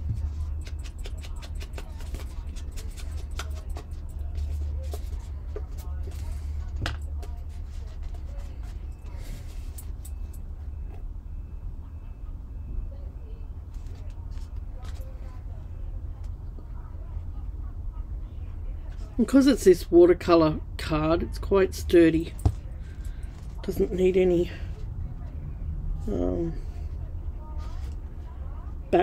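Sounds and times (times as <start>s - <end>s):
steady low hum: 0.0s - 29.0s
paper rustling: 0.2s - 10.0s.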